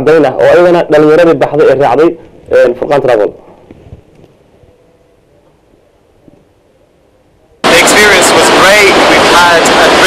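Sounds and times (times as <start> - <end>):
studio background hiss and hum: 0.0 - 10.0.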